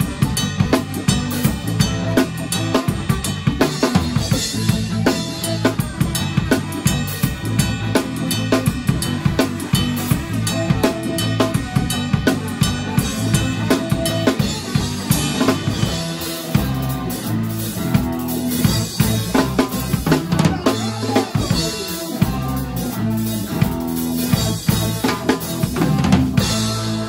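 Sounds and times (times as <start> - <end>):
bass and guitars playing: 0.0 - 27.0
drum kit played hard: 0.0 - 27.0.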